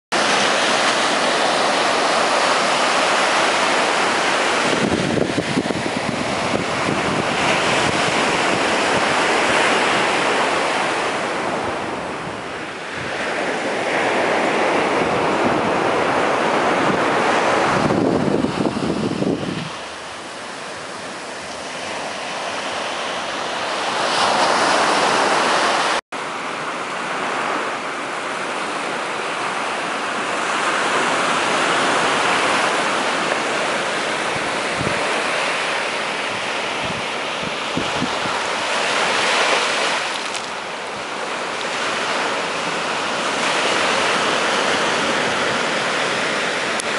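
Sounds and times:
surf washing on beach: 0.1s - 46.9s
wind buffeting microphone: 0.2s - 26.0s, 29.5s - 46.9s.

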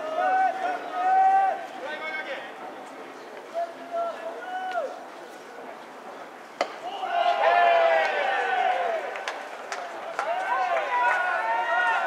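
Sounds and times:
crowd shouting and calling: 0.0s - 2.6s, 6.6s - 12.0s.

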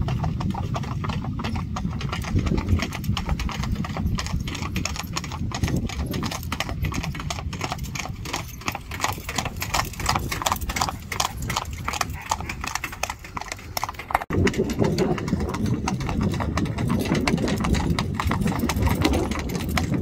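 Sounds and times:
horse hoofbeats on asphalt: 0.0s - 20.0s.

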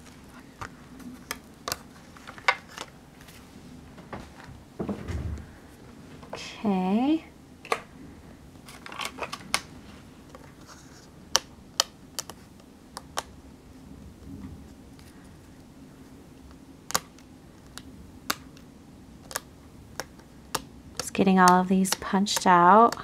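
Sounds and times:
pick tool clicking on paper: 19.2s - 23.0s.

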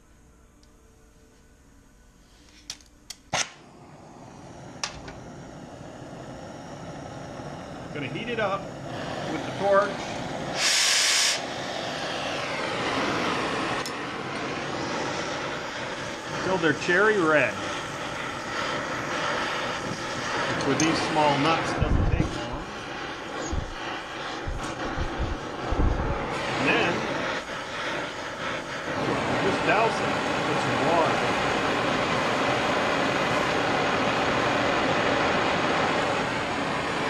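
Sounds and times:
gas torch flame hissing: 2.2s - 37.0s
burst of hissing gas: 3.5s - 37.0s.

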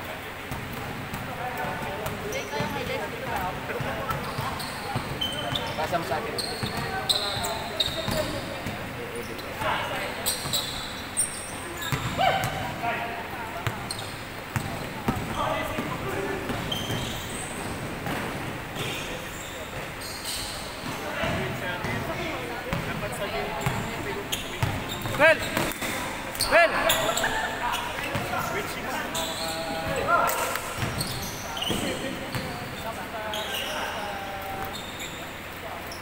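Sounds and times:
players' voices: 0.0s - 36.0s
sneaker squeaks: 0.4s - 36.0s
basketball bouncing on gym floor: 6.4s - 8.9s, 11.8s - 12.8s, 13.6s - 19.0s, 24.6s - 26.0s, 30.8s - 32.6s.

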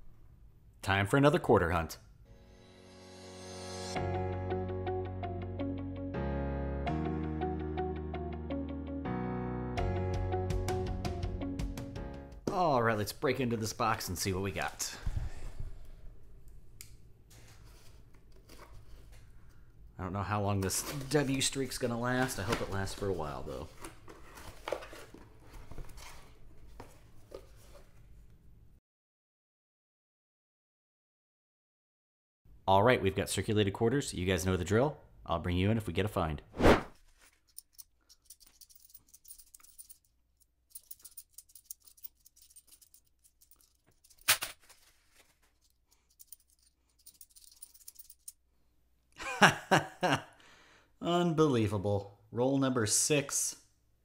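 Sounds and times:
coins clicking: 37.5s - 44.6s, 45.6s - 48.4s
paper wrapper tearing and crinkling: 44.1s - 45.7s.

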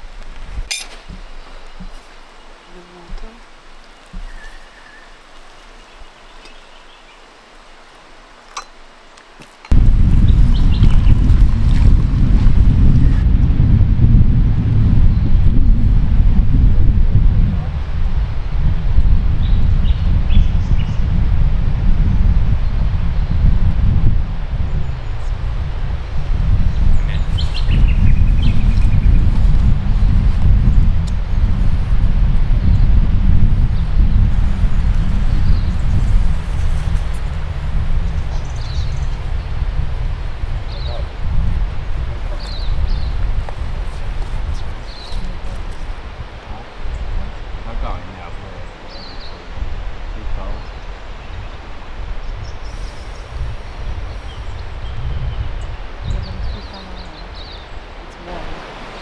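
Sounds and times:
wind rumble on microphone: 0.0s - 7.0s, 9.6s - 59.0s
birds chirping: 0.7s - 11.4s, 26.1s - 29.3s, 38.0s - 39.7s, 40.6s - 41.2s, 41.8s - 43.4s, 44.1s - 45.5s, 46.6s - 59.0s.

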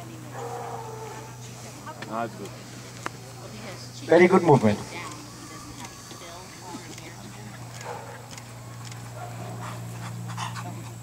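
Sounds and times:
steady low hum: 0.0s - 11.0s
dog panting: 4.4s - 11.0s.

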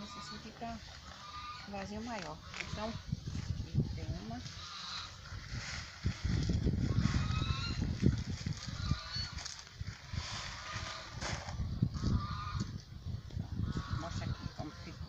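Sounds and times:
fowl honking: 0.0s - 3.1s, 4.2s - 5.4s, 6.9s - 7.9s, 8.5s - 9.5s, 10.2s - 12.7s, 13.6s - 15.0s.

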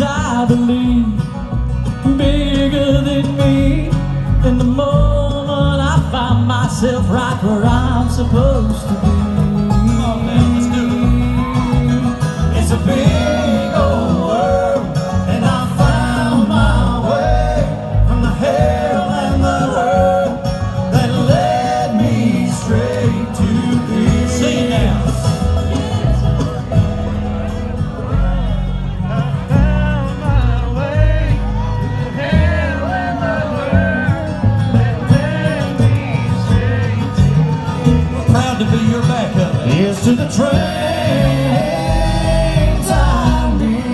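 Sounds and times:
acoustic guitar: 0.0s - 43.9s
banjo: 0.0s - 43.9s
bluegrass band playing: 0.0s - 43.9s
upright bass: 0.0s - 43.9s.

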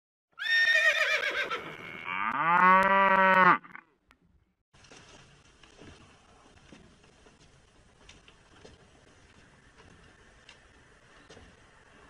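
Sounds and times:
horse whinnying: 0.4s - 3.7s
cow mooing: 1.6s - 3.8s.

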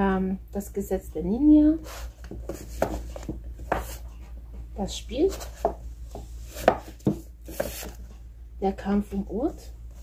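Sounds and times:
book knocking on shelf: 2.2s - 4.0s, 5.4s - 7.9s
book covers sliding: 5.3s - 8.0s.

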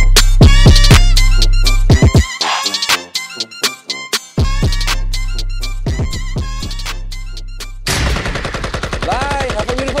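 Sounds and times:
hip-hop beat: 0.0s - 7.8s
automatic gunfire: 7.9s - 10.0s.

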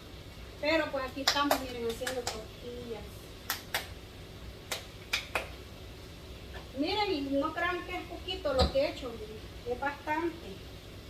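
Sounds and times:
hands slapping dough: 4.7s - 5.6s.

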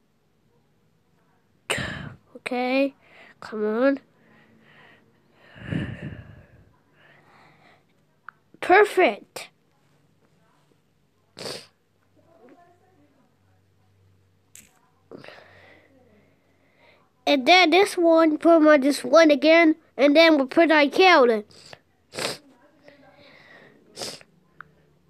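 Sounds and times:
breathy puff of air: 4.4s - 6.6s
sharp sniff: 21.5s - 22.5s, 23.3s - 24.3s.

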